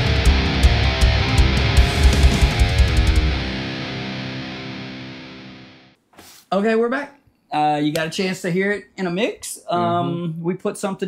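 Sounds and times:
backing mix low end: 0.0 - 5.6
distorted electric guitar chord: 0.0 - 6.0.

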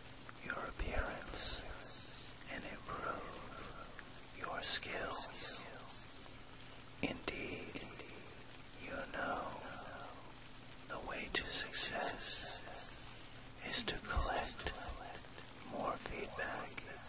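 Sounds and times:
steady rain: 0.0 - 17.0
person whispering: 0.4 - 6.3, 7.0 - 17.0.

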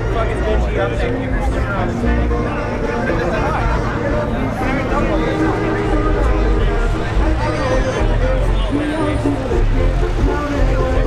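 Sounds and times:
diesel engine rumbling: 0.0 - 11.0
people talking: 0.0 - 11.0.

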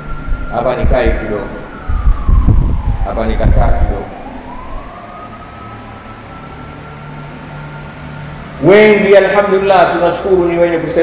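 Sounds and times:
siren wailing: 0.0 - 11.0.

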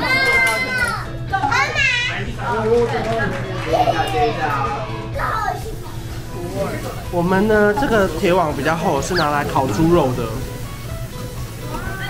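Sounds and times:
adult voices: 0.0 - 10.5
background music: 0.0 - 12.0.

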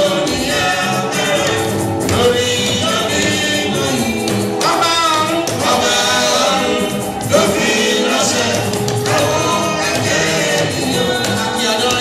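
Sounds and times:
backing voices: 0.0 - 12.0
gospel band accompaniment: 0.0 - 12.0
man singing lead: 0.0 - 12.0.

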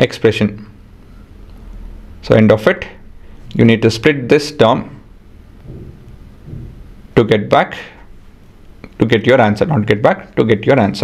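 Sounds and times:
low background rumble: 0.7 - 10.0
faint soft swells: 5.4 - 7.2.

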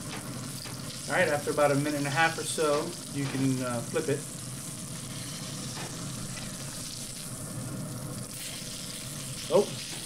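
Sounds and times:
steak sizzling in a skillet: 0.0 - 10.0.

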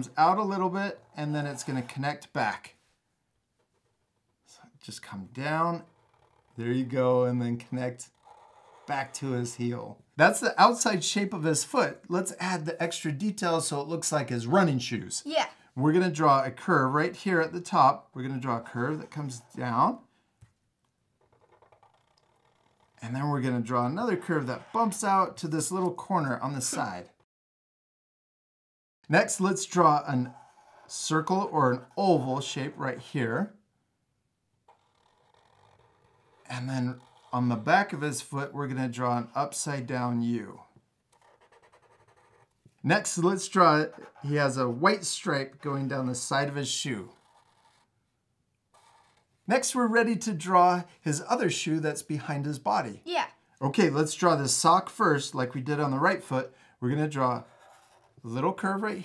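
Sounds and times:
markers drawing on paper: 0.3 - 2.4, 8.1 - 9.4, 18.6 - 19.8, 21.2 - 27.0, 34.7 - 38.0, 41.1 - 48.0, 48.8 - 50.4, 55.7 - 58.8.

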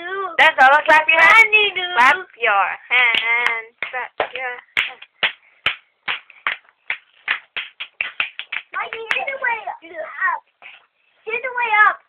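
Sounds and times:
hands clapping: 3.1 - 9.4.

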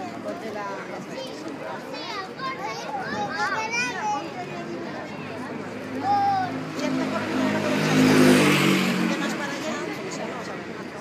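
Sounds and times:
vehicle engine passing by: 4.6 - 11.0.

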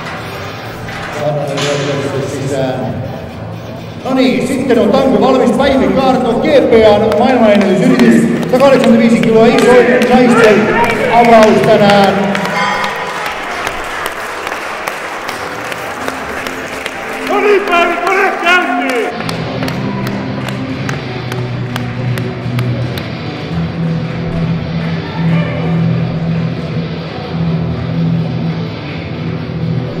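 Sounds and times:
background music: 0.0 - 30.0
crowd clapping: 5.4 - 26.7
crowd shouting encouragement: 9.2 - 20.6.

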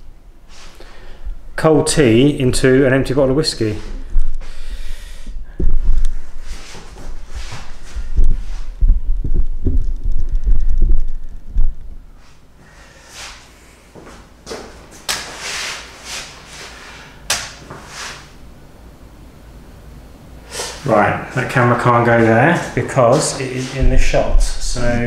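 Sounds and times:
footsteps: 5.6 - 12.4, 21.3 - 25.0
camera knocks and thuds: 8.0 - 11.8.

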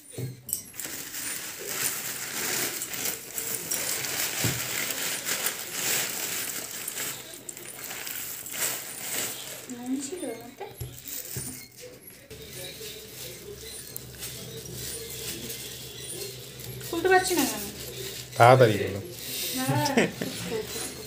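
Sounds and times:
plastic bags rustling and crinkling: 0.1 - 21.0.

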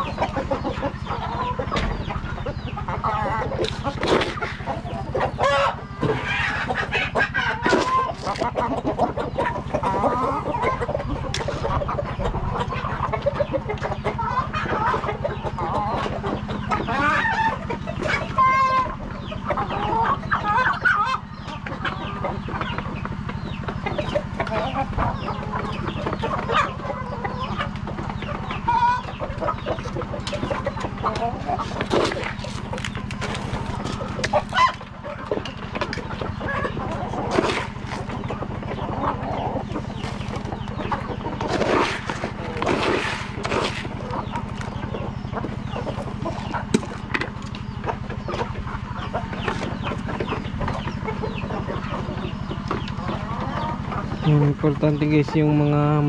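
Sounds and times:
chickens clucking: 0.0 - 56.0
steady low hum: 0.0 - 56.0.

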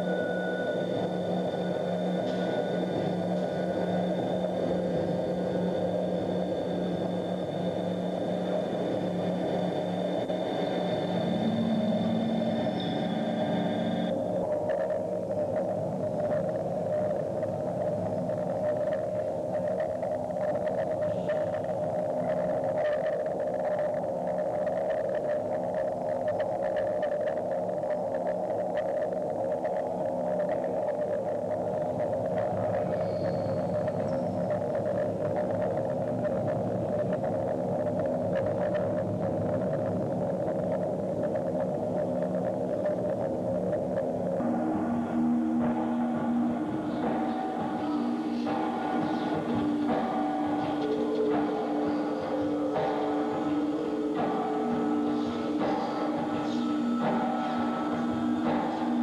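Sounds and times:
electronic drone of held tones: 0.0 - 59.0.

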